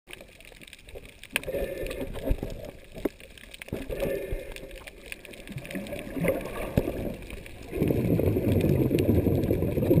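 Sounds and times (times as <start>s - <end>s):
muffled underwater water sloshing: 0.1s - 10.0s.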